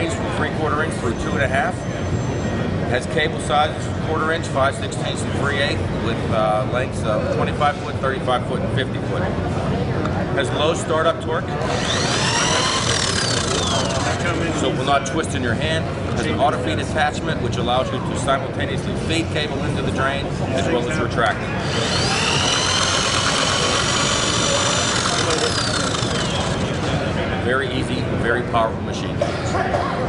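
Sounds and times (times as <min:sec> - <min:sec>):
drain cleaner motor whine: 0:11.7 - 0:14.3, 0:21.6 - 0:27.0.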